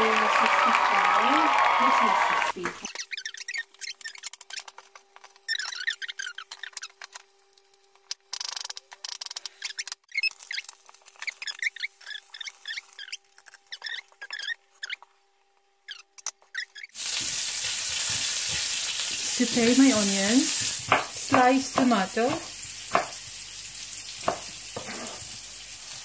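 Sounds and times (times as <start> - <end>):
high chirping squeaks: 2.9 - 4.8, 5.4 - 7.2, 9.2 - 15.2, 15.8 - 17.0
onion sizzling in hot oil: 16.9 - 26.0.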